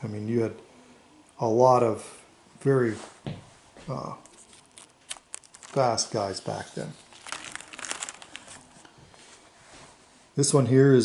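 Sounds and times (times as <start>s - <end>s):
plastic sleeves crinkling: 3.9s - 9.2s.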